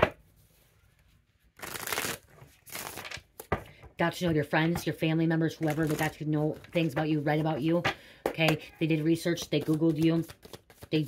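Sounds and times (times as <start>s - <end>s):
cards being shuffled: 1.6s - 3.6s, 5.6s - 7.7s, 9.4s - 11.0s.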